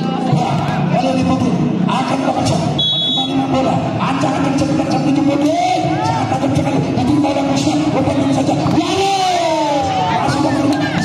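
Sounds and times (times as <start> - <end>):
crowd chatter: 0.0 - 11.0
referee's whistle blast: 2.8 - 3.4.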